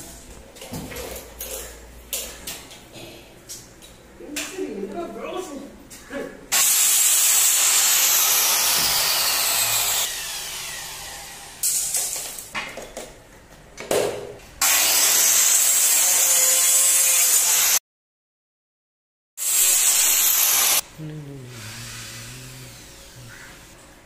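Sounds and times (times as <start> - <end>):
circular saw cutting plastic: 6.5 - 12.1, 21.4 - 23.7.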